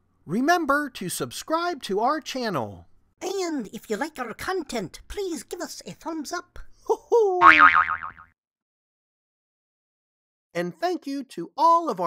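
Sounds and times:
wobbling twang: 0:07.4 - 0:08.3.

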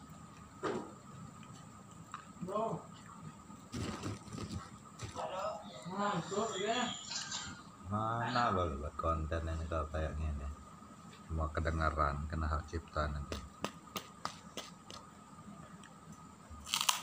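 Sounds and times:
cracker being bitten: 0:16.6 - 0:17.0.

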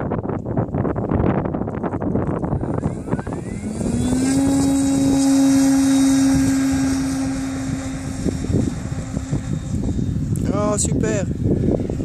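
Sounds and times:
electric motor and propeller drone: 0:00.4 - 0:12.0.

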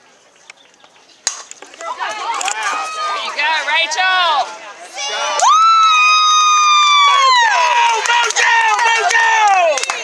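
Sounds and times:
bat hitting ball: 0:01.2 - 0:01.6
spectators shouting and cheering: 0:01.7 - 0:10.0.

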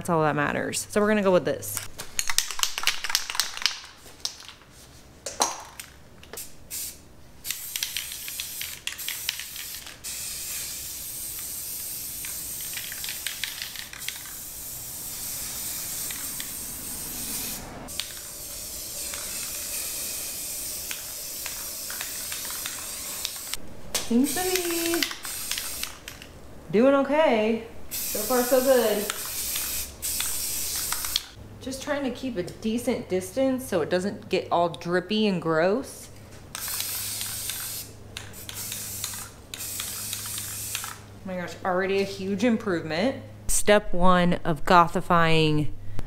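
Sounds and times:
spray can rattling: 0:02.1 - 0:04.7, 0:05.4 - 0:23.6, 0:24.2 - 0:26.3, 0:27.9 - 0:31.4, 0:36.5 - 0:41.0
spray paint hissing: 0:06.4 - 0:26.3, 0:27.9 - 0:31.4, 0:36.5 - 0:41.0.

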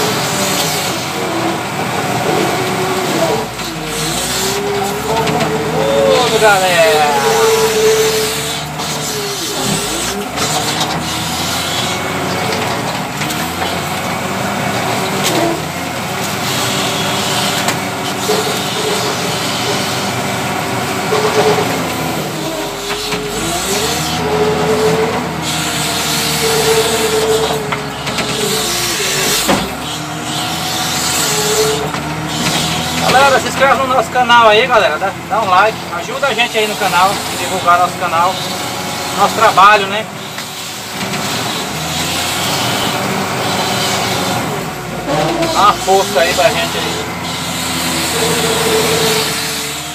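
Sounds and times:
diesel engine running under load: 0:00.0 - 0:49.9.

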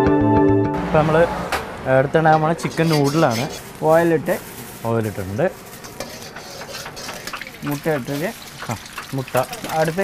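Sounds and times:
metal ladle scraping a wok: 0:02.6 - 0:03.7, 0:05.6 - 0:09.1
hot oil hissing: 0:02.6 - 0:10.0.

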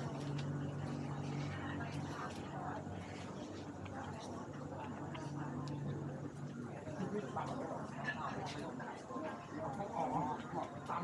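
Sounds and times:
background chatter: 0:00.0 - 0:11.0
low steady hum: 0:00.0 - 0:11.0.

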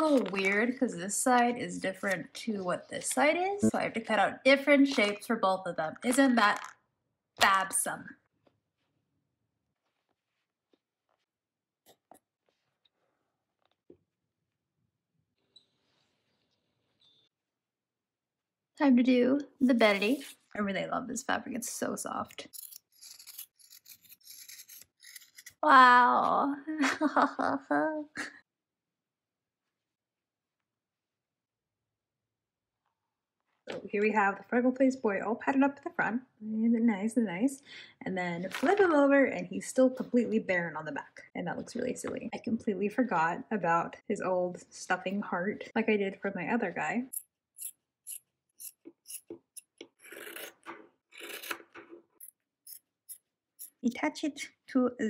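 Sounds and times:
scissors cutting fabric: 0:22.5 - 0:25.6, 0:47.6 - 0:50.6.

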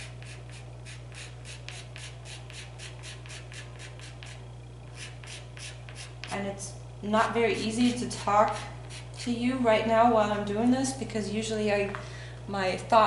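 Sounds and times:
pastel scratching on paper: 0:00.0 - 0:04.4, 0:05.0 - 0:06.3.

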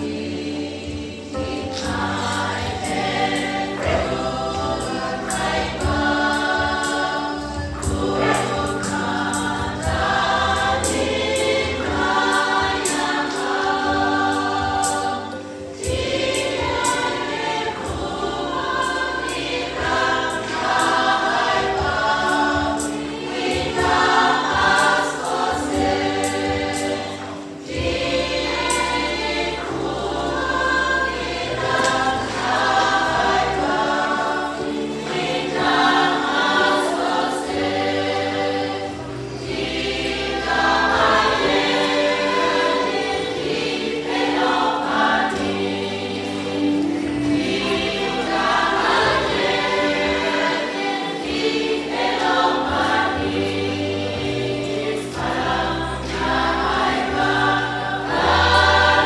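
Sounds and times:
church choir singing: 0:00.0 - 0:59.0.

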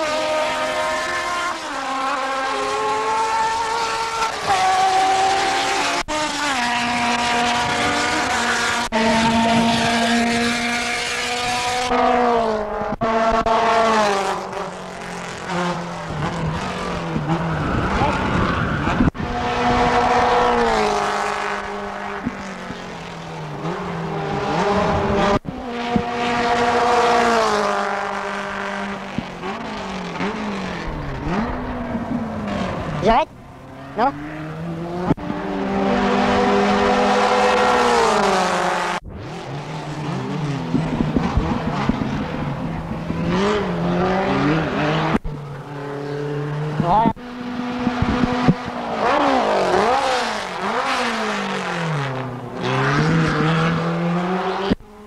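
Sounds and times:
engine revving: 0:00.0 - 0:55.0
racing car engines passing: 0:00.0 - 0:55.0.

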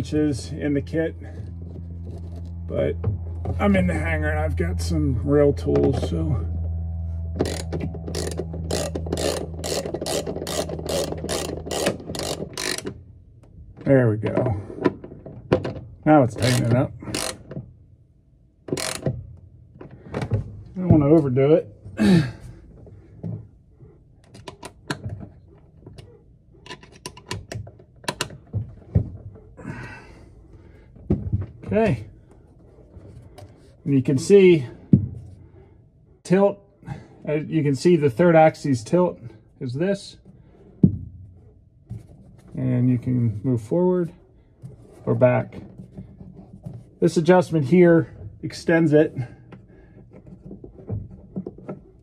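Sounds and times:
steady low hum: 0:00.0 - 0:52.0
ratchet wrench clicking: 0:07.4 - 0:12.9, 0:18.8 - 0:19.1
man grunting: 0:22.0 - 0:22.4.

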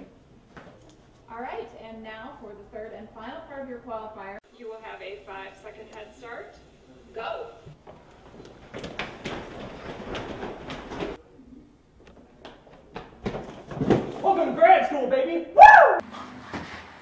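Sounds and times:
man shouting: 0:14.2 - 0:16.0.

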